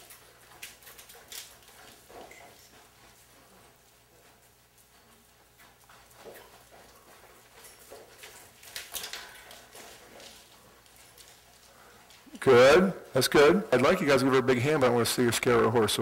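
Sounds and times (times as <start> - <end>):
horse hoofbeats cantering: 0.0 - 15.7.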